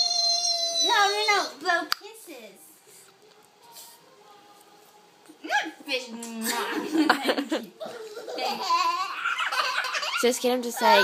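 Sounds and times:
toddler laughing: 7.8 - 10.2.

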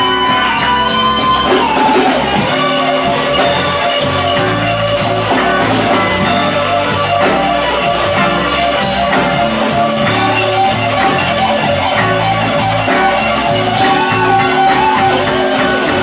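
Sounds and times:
drum kit with cymbal strokes: 0.0 - 16.0
electric guitar: 0.0 - 16.0
low bass notes: 0.0 - 16.0.

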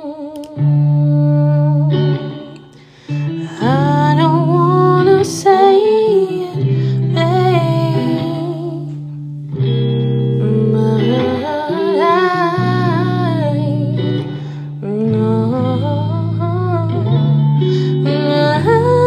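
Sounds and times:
electric guitar melody: 0.0 - 19.0.

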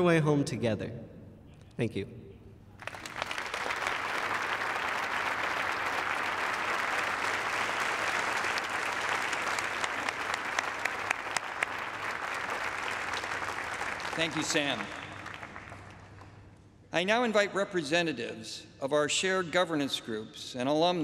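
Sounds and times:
audience applauding: 2.8 - 16.5.

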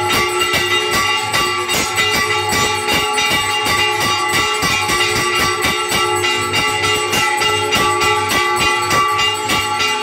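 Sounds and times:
bells struck rapidly: 0.0 - 10.0.

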